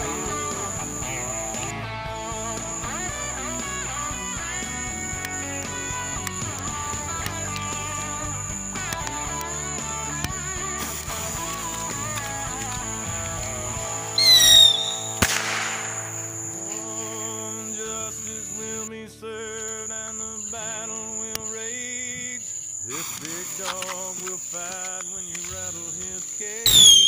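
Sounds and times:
country song with guitar: 0.0s - 27.0s
insect chirring: 0.0s - 27.0s
bottle rocket whistle: 14.1s - 16.5s, 26.7s - 27.0s
sharp pop: 14.4s - 16.8s.

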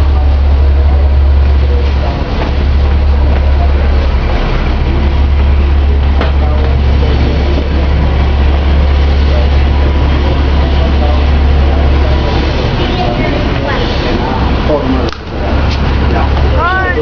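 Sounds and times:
bus engine rumble: 0.0s - 17.0s.

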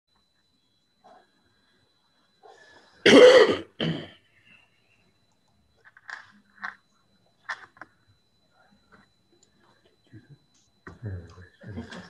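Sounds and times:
person coughing: 3.0s - 4.2s.

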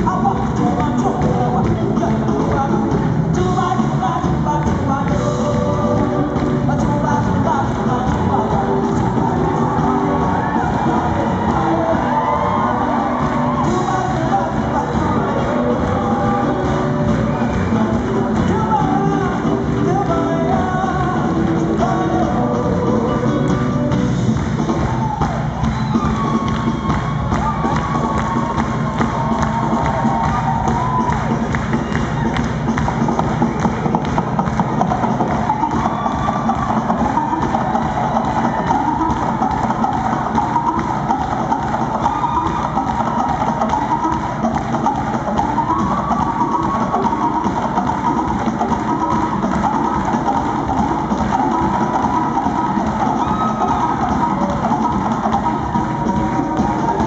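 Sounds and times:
live band with loud percussion: 0.0s - 57.0s
crowd cheering: 7.4s - 57.0s.

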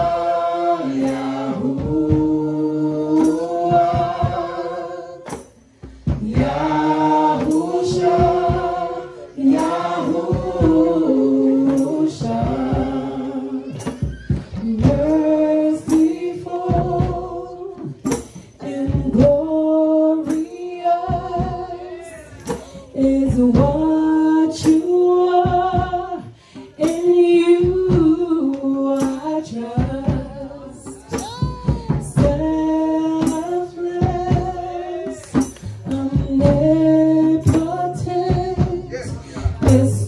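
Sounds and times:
sharp percussive hits: 0.0s - 19.6s, 22.2s - 23.8s, 26.6s - 40.0s
group singing a worship song: 0.0s - 40.0s.

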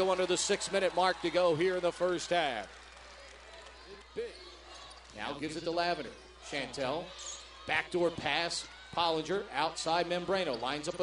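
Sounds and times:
faint arena background: 0.0s - 11.0s.

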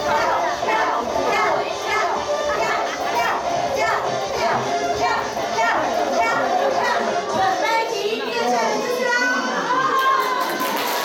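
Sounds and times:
dance music playing: 0.0s - 9.7s
children's voices: 0.0s - 10.6s
crowd chatter and shouts: 0.0s - 11.0s.

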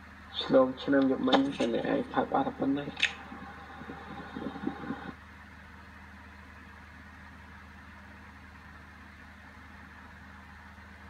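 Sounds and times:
low background hum: 0.0s - 11.0s
person speaking: 0.4s - 5.1s.

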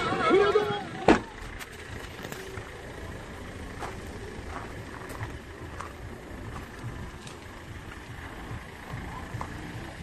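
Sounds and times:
car door slamming: 1.0s - 1.4s
steady low rumble: 1.2s - 10.0s.

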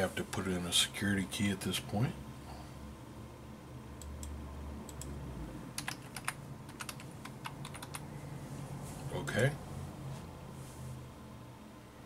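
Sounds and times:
keyboard keys clicking: 5.8s - 8.0s.

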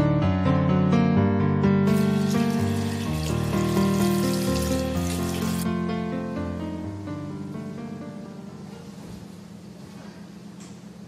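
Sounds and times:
background music: 0.0s - 7.6s
person splashing and washing face: 1.9s - 5.7s
tap water running into a sink: 1.9s - 5.7s.

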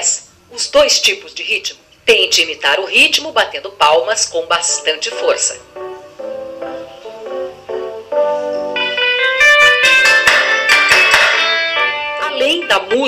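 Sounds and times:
instrumental music: 4.8s - 13.0s.

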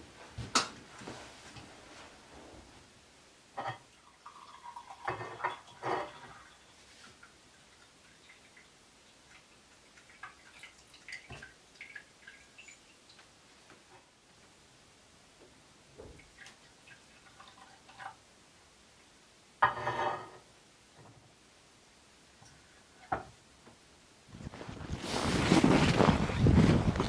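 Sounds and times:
tea pouring into cup: 4.0s - 12.9s.

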